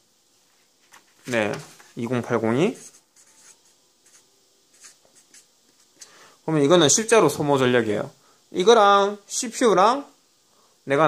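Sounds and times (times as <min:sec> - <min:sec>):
marker pen scratching on paper: 0:02.5 - 0:06.0.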